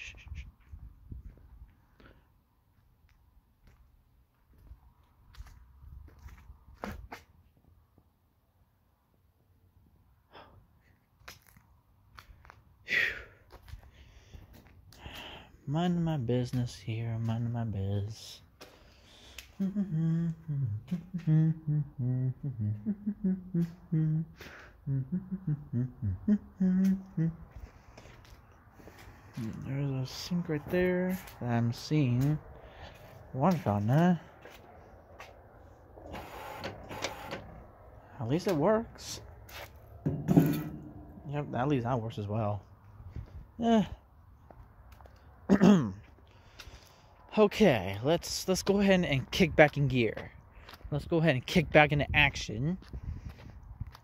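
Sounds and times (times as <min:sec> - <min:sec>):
faint breath: 0:12.9 - 0:15.6, 0:18.6 - 0:19.6, 0:24.3 - 0:24.8, 0:27.5 - 0:29.4, 0:32.6 - 0:33.3, 0:46.2 - 0:47.3.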